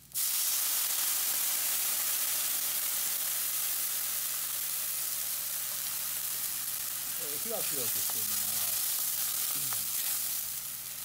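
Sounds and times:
liquid hissing in hot wok: 0.0 - 11.0
sizzling and boiling: 0.0 - 11.0.

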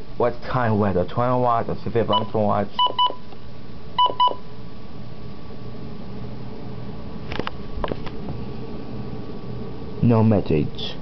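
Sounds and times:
faint steady hum: 0.0 - 11.0
electronic key-press beeps: 2.2 - 3.2, 4.0 - 4.4.

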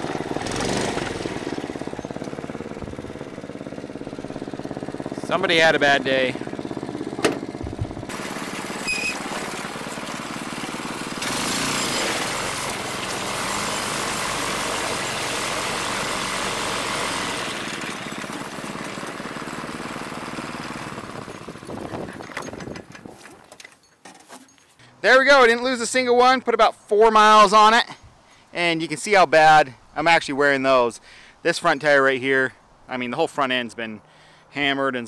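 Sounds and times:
go-kart engine running: 0.0 - 23.1.

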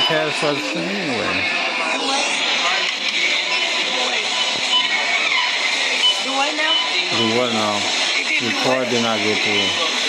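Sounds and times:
muffled video music: 0.0 - 10.0
muffled voices: 0.0 - 10.0.

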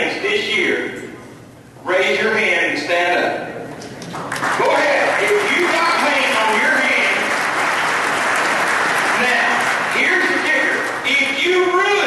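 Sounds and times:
audience applauding: 4.0 - 11.3.

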